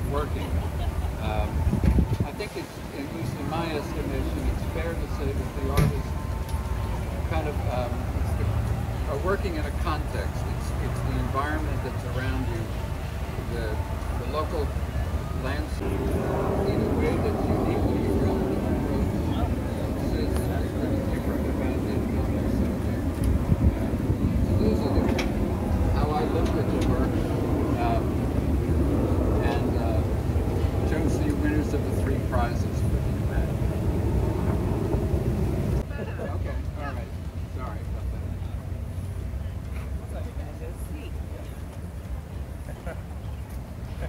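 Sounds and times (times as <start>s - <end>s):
wind on microphone: 1.2s - 3.8s, 15.7s - 35.9s.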